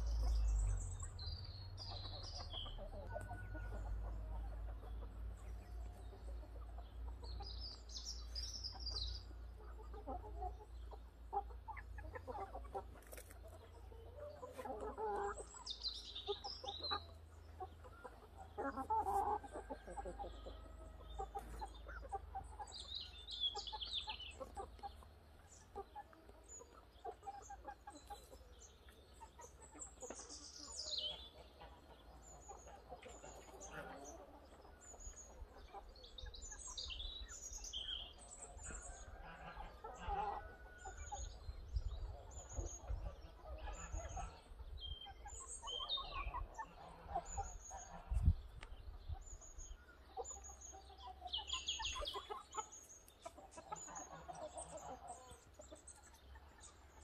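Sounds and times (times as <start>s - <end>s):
small birds chirping: 0.0s - 57.0s
fowl clucking: 1.8s - 28.5s, 29.2s - 36.8s, 37.8s - 41.3s, 42.1s - 49.2s, 50.2s - 57.0s.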